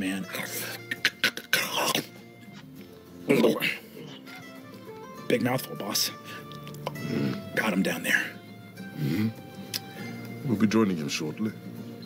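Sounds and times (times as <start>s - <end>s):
soft background music: 0.0s - 12.0s
hard swallow: 6.3s - 7.5s, 8.9s - 10.0s
joints cracking: 6.4s - 7.4s.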